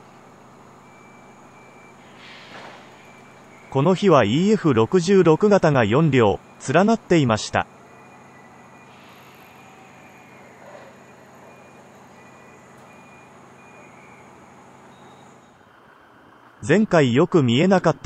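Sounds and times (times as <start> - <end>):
rail yard noise: 0.0 - 18.0
vehicle traffic: 0.0 - 18.0.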